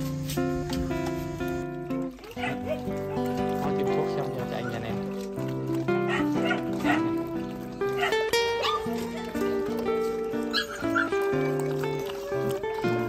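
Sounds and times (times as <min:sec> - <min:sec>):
background music: 0:00.0 - 0:13.0
puppies yipping and whining: 0:00.8 - 0:13.0.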